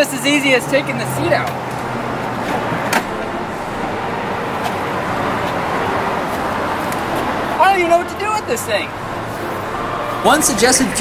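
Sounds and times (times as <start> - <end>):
steady background rush: 0.0 - 11.0.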